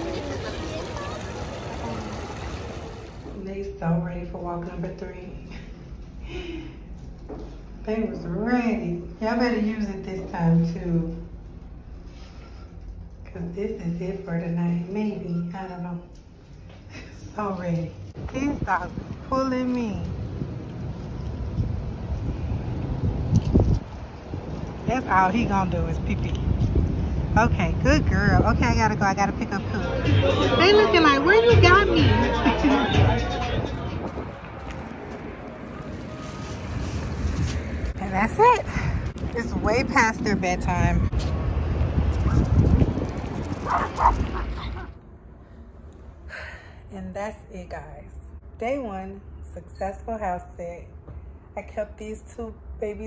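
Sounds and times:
wind noise on microphone: 18.2 - 29.9, 32.9 - 35.4, 36.6 - 44.9
dog yipping: 43.6 - 44.9.

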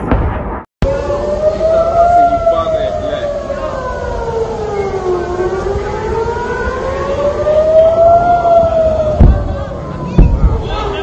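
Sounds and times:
air-raid siren wailing: 0.8 - 11.0.

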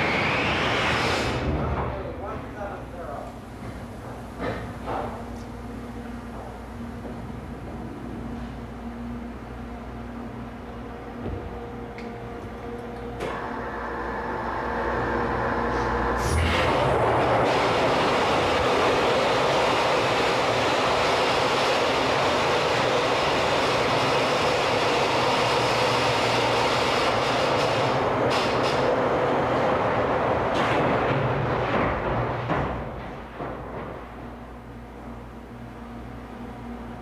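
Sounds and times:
mechanical rumble with hum: 0.0 - 37.0
machinery running loudly: 13.3 - 31.6.

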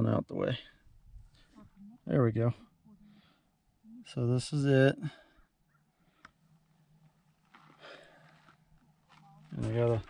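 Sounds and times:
soft breathy noise: 2.6 - 4.0.

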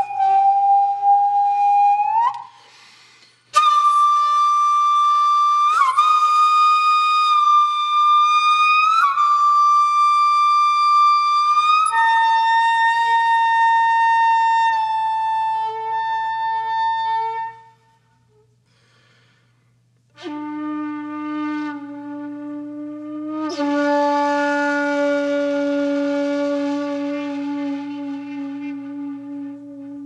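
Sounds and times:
flute-like wind instrument: 0.0 - 2.8, 3.4 - 18.5, 20.1 - 30.0
faint steady hum: 0.0 - 30.0.

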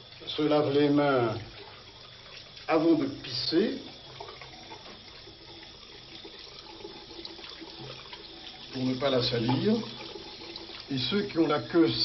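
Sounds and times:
water running from a tap: 0.0 - 12.0.

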